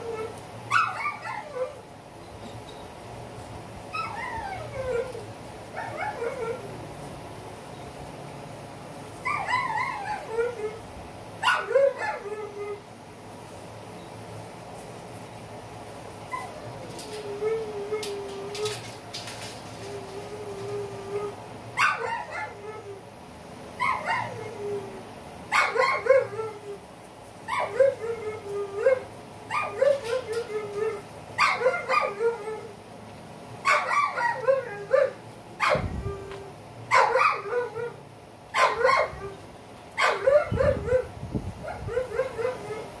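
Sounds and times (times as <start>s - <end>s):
dogs barking: 0.0s - 1.8s, 11.4s - 12.7s, 21.2s - 22.9s, 23.8s - 24.5s, 25.5s - 26.5s, 27.5s - 32.7s, 33.6s - 35.9s, 36.9s - 39.3s, 40.0s - 43.0s.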